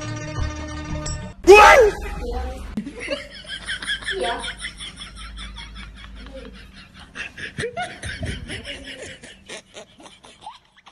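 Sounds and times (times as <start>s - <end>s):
high-pitched snickering laughter: 3.9s - 10.9s.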